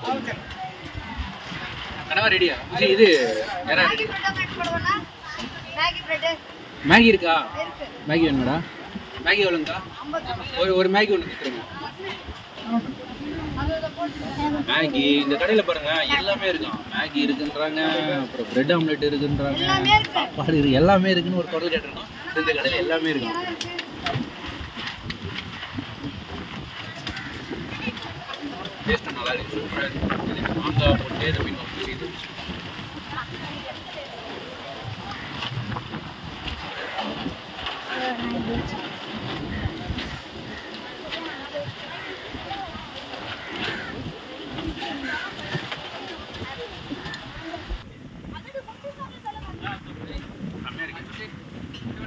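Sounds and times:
faint voices: 0.0 - 52.0
noisy outdoor background: 0.0 - 52.0
wind buffeting microphone: 0.0 - 52.0.

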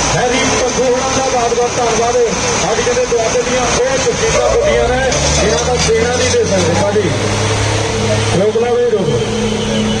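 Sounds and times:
crowd noise: 0.0 - 10.0
tractor engines under load: 0.0 - 10.0.

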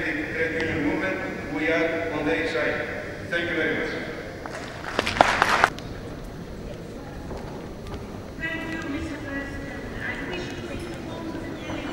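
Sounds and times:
people talking indistinctly: 6.0 - 11.9.

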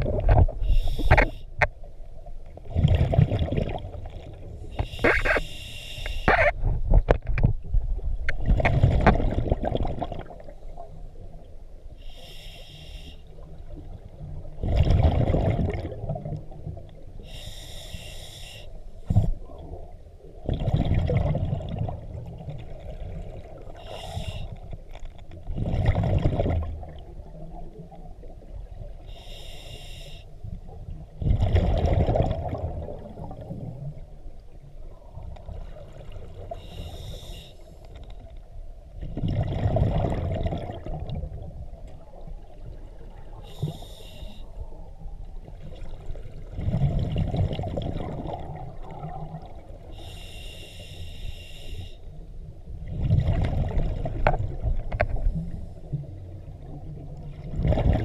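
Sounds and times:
exhaled bubbles rumbling: 0.0 - 1.3, 2.5 - 5.4, 6.3 - 11.5, 13.5 - 17.1, 19.1 - 24.4, 25.4 - 29.0, 30.6 - 36.7, 38.8 - 43.8, 44.6 - 50.0, 52.4 - 58.0
regulator inhale hiss: 0.6 - 1.6, 4.7 - 6.4, 11.9 - 13.5, 17.2 - 19.4, 23.8 - 24.7, 29.0 - 30.4, 36.5 - 38.0, 43.3 - 44.8, 49.9 - 52.2.

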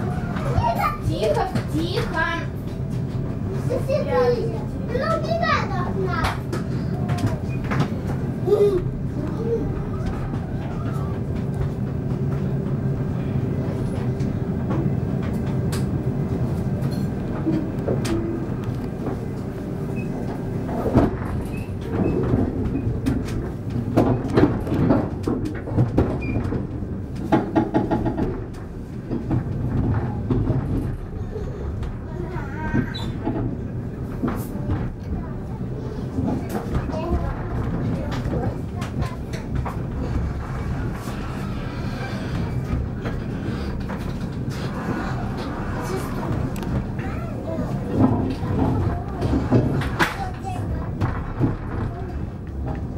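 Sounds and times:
train wheels rumbling on rails: 0.0 - 52.9
indistinct voices: 34.3 - 52.9.

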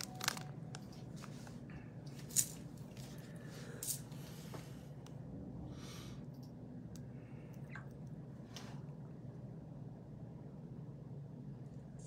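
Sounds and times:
plastic wrapper crinkling: 0.0 - 1.4
low steady hum: 0.0 - 12.0.

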